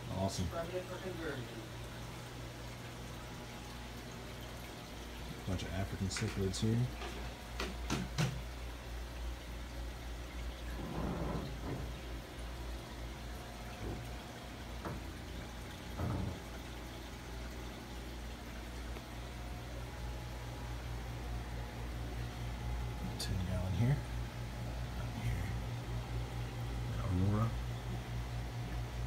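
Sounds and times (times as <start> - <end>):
pump hum and running water: 0.0 - 29.0.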